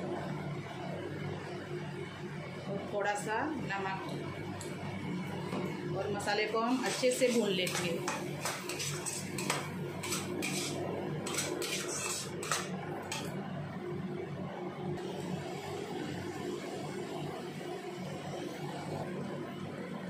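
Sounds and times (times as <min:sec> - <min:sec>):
spatula scraping a metal pan: 0:06.7 - 0:13.3
paste sizzling in oil: 0:06.8 - 0:12.7.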